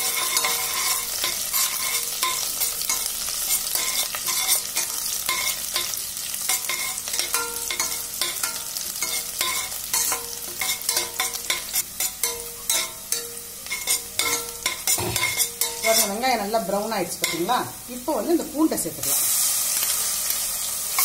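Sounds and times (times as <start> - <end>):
metal spatula scraping pot: 0.0 - 16.4
onions sizzling in oil: 0.0 - 21.0.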